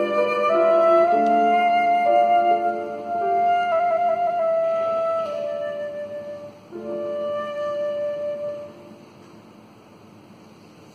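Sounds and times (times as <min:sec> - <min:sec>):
flute long note: 0:00.0 - 0:09.2
piano chord: 0:00.0 - 0:09.5.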